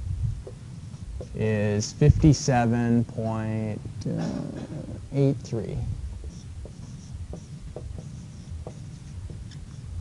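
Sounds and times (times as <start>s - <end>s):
low room rumble: 0.0s - 10.0s
writing scratches on a board: 0.4s - 1.7s, 6.1s - 10.0s.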